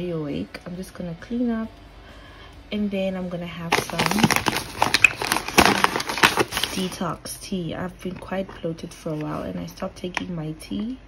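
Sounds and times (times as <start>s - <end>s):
crinkling rustle: 3.7s - 7.0s.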